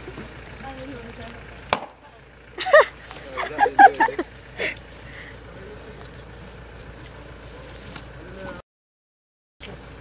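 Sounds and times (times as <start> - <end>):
axe striking log: 1.7 - 2.0.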